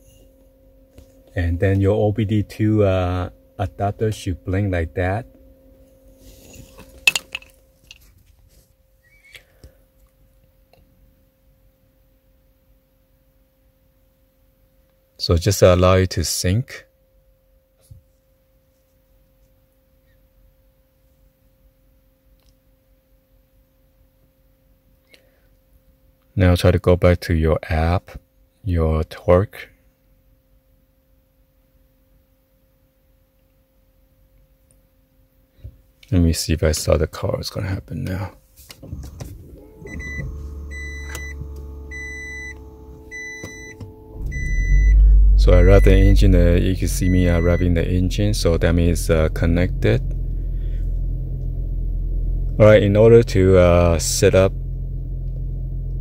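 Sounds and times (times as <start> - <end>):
faint high-pitched tone: 0.0 - 8.2, 39.5 - 55.8
car engine hum: 38.7 - 56.0
dashboard chime beeping: 39.8 - 49.8.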